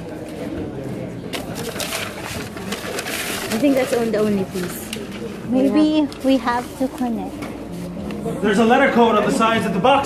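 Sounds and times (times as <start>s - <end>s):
murmur of people talking: 0.0s - 10.0s
paper rustling: 1.3s - 8.2s.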